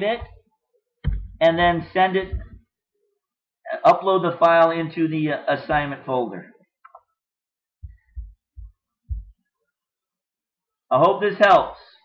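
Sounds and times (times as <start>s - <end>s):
low dull thumps: 0.0s - 0.4s, 1.0s - 2.7s, 7.8s - 9.4s.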